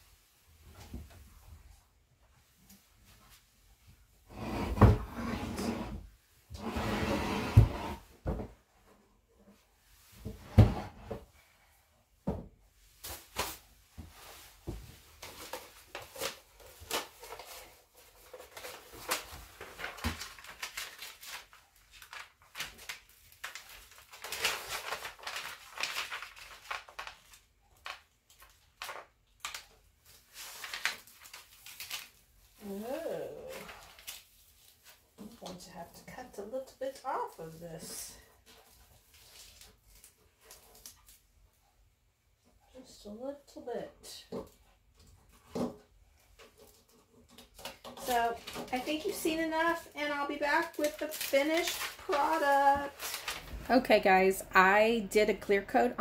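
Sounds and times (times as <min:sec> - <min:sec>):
hands rubbing paper surface: 0:48.8 - 0:53.9.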